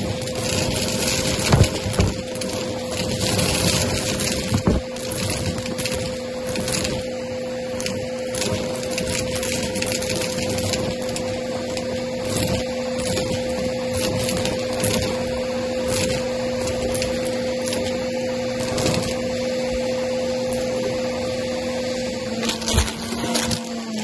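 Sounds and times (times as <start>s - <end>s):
vacuum cleaner running: 0.0s - 24.0s.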